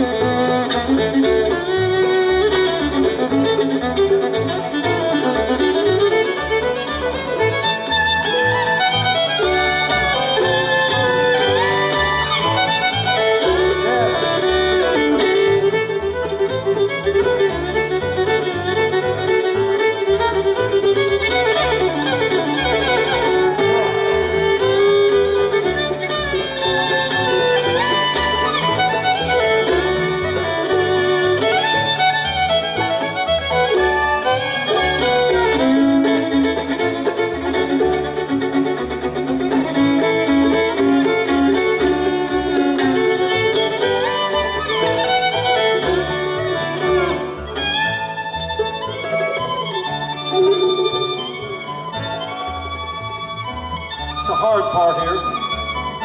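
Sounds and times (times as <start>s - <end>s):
bluegrass band playing: 0.0s - 56.0s
fiddle sliding between notes: 0.0s - 56.0s.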